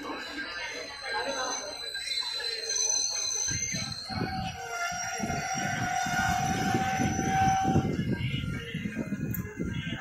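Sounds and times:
train horn long note: 0:04.7 - 0:07.9.

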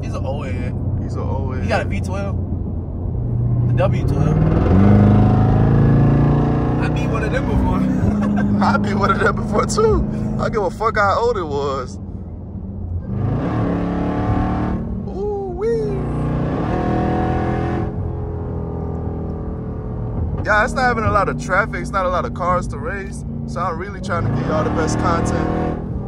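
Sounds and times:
car engine pulling hard: 0:00.0 - 0:26.0
road noise: 0:00.0 - 0:26.0.

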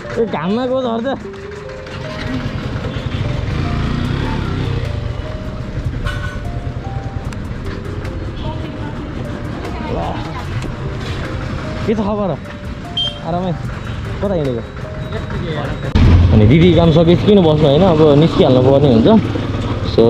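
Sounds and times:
motorcycle engine idling: 0:00.0 - 0:07.5, 0:12.7 - 0:20.0
background music: 0:00.0 - 0:20.0.

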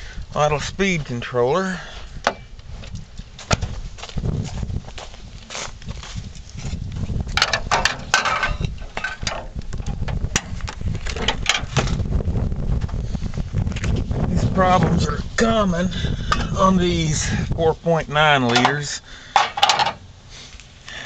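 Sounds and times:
low rumble: 0:02.4 - 0:17.8
footsteps crunching through snow: 0:02.6 - 0:07.4
sharp clicks and knocks: 0:07.4 - 0:12.0.

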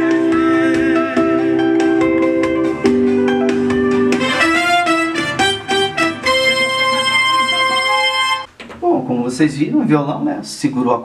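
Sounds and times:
held synthesizer chord: 0:00.0 - 0:08.5
synthesizer guitar solo line: 0:00.0 - 0:08.5.

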